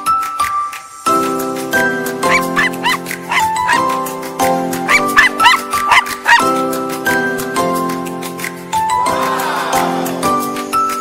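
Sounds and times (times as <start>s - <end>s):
music with sustained chords: 0.0s - 11.0s
small dog yipping: 2.3s - 3.8s, 4.9s - 6.5s.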